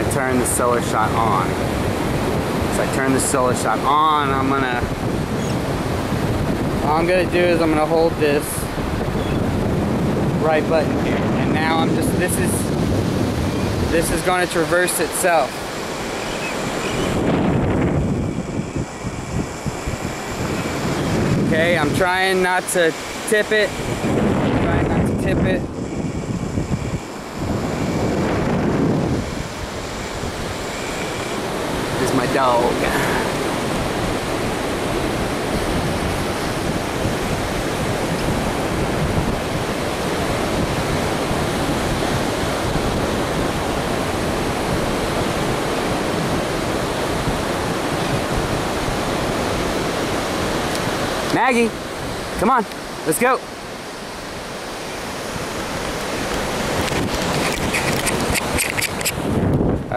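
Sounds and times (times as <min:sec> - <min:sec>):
surf washing: 0:00.0 - 0:59.9
wind buffeting microphone: 0:00.0 - 0:59.9.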